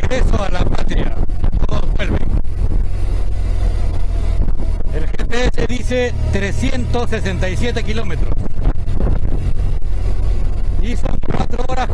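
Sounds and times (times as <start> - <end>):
motorcycle engine running: 0.0 - 11.9
wind rumble on microphone: 0.0 - 11.9.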